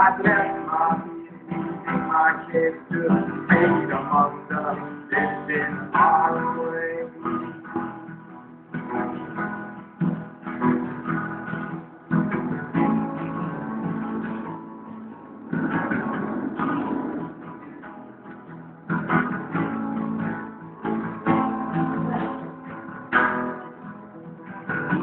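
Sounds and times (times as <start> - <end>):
person singing: 0.0 - 7.9, 21.3 - 23.5
acoustic guitar strumming: 0.0 - 25.0
bass guitar: 0.0 - 25.0.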